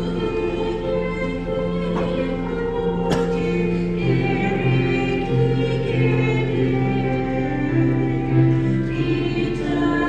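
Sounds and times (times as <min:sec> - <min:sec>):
women's choir singing a hymn: 0:00.0 - 0:10.0.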